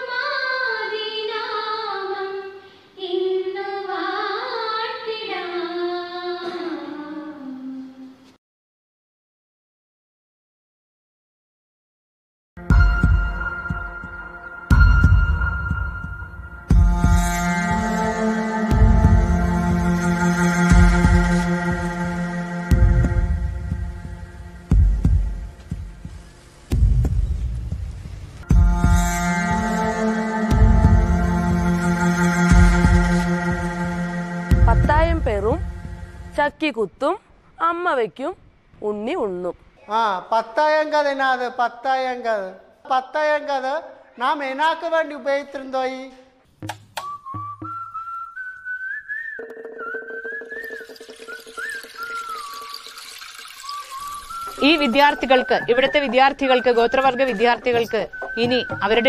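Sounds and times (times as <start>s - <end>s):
background music: 12.6s - 36.6s, 46.6s - 59.0s
high whistled melody: 12.7s - 24.2s, 47.0s - 59.0s
low thuds: 22.7s - 28.9s
deep heartbeat-like bass thumps: 22.7s - 29.0s, 30.6s - 31.2s, 34.5s - 36.2s.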